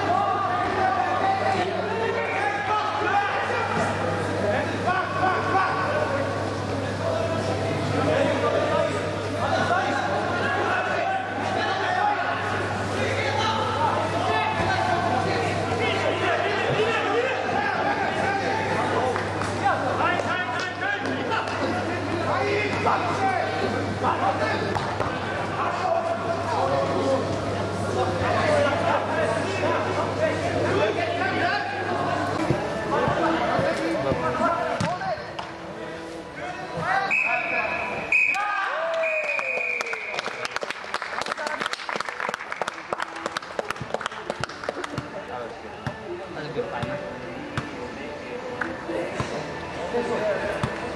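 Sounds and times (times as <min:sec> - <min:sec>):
indistinct crowd chatter: 0:00.0 - 0:50.9
referee's whistle blast: 0:37.1 - 0:40.1.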